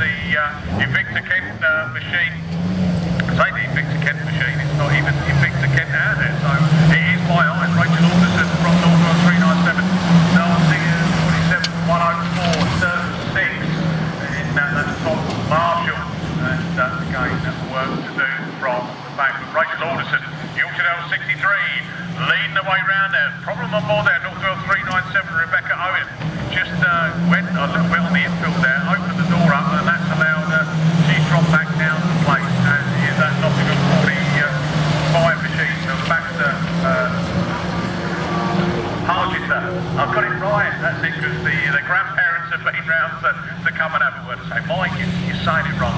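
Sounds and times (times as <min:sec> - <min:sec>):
race commentary: 0:00.0 - 0:45.9
racing car engines droning: 0:00.0 - 0:45.9.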